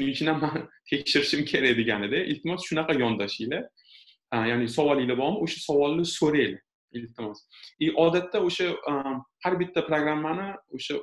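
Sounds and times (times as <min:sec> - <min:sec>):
person talking: 0:00.0 - 0:03.6, 0:04.4 - 0:11.0.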